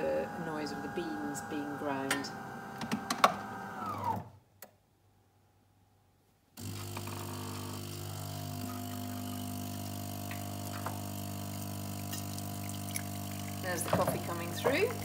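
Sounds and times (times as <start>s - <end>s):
water pump humming: 6.6s - 15.0s.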